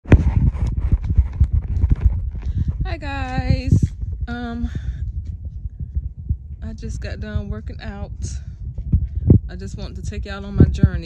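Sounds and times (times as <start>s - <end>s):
phone microphone handling noise: 0.0s - 11.0s.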